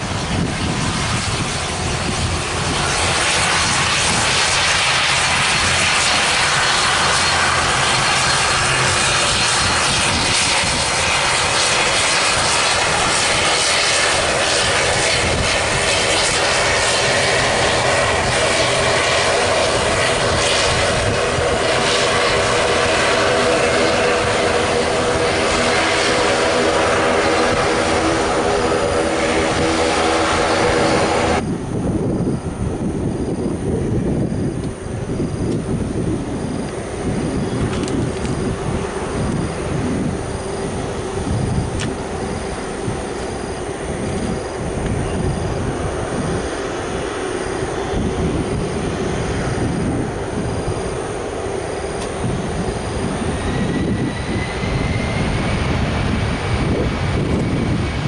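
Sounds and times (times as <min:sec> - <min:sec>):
turboprop engines droning: 0:00.0 - 0:58.0.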